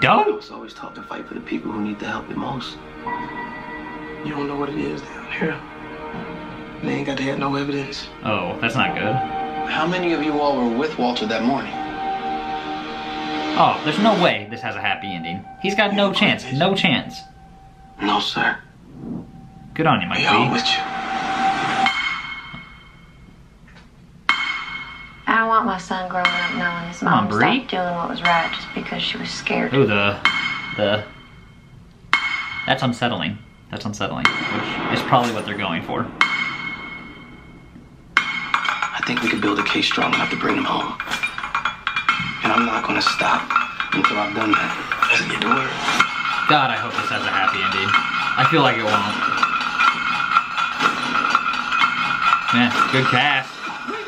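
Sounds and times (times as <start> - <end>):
sustained high tone: 0.0 - 23.4, 25.0 - 31.8
clinking pulse: 0.0 - 54.0
ringing metallic strikes: 0.0 - 54.0.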